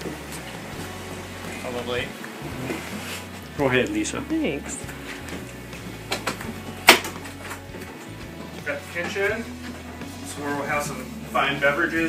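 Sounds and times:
footsteps on hard floor: 0.0 - 10.2.

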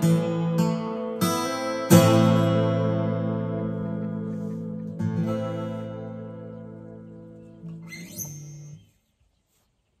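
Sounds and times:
acoustic guitar chord ringing: 0.0 - 8.9
short rising squeak: 7.9 - 9.0.

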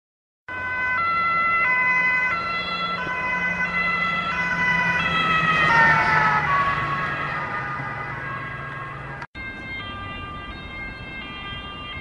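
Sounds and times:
vehicle hum: 0.5 - 11.5
two-tone ambulance siren: 0.5 - 12.0.

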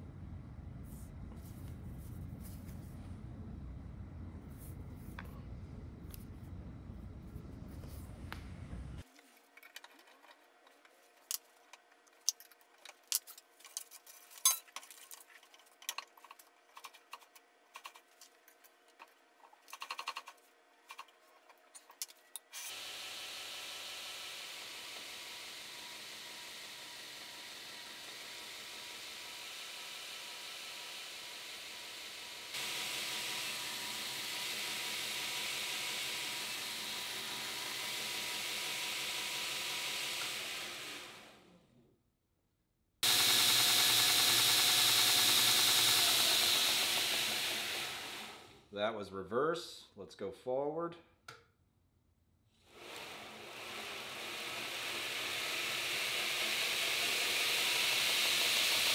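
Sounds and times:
metal parts clinking: 12.2 - 16.2
belt grinder running: 22.6 - 41.5, 43.0 - 48.6, 52.7 - 58.9.

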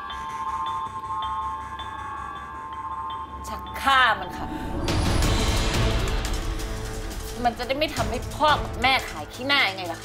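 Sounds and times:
soft chime-like notes: 0.0 - 6.8
sustained high drone: 0.7 - 8.2.

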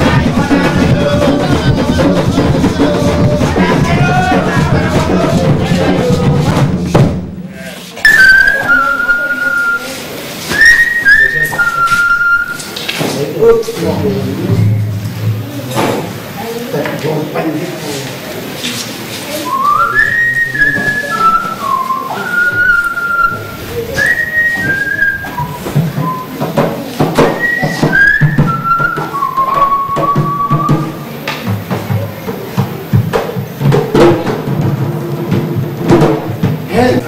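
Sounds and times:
hand drums beating: 0.0 - 16.2, 19.5 - 37.0
person whistling a melody: 8.0 - 12.8, 19.4 - 26.4, 27.3 - 31.0.

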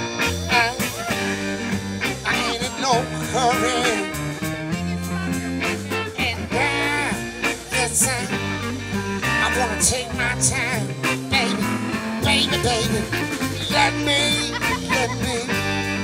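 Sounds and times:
bass guitar: 0.0 - 16.0
drums: 0.0 - 16.0
electric guitar: 0.0 - 16.0
wavering lead melody: 0.0 - 16.0.

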